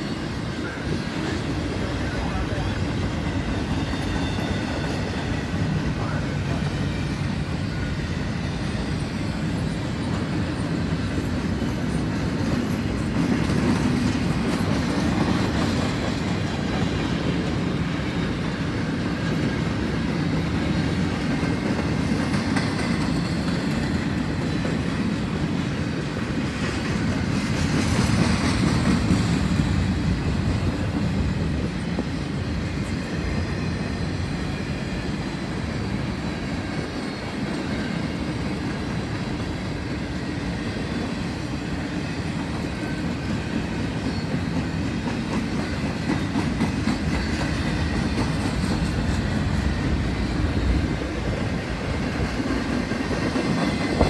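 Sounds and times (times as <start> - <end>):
freight train wheels clattering on rail: 0.0 - 54.0.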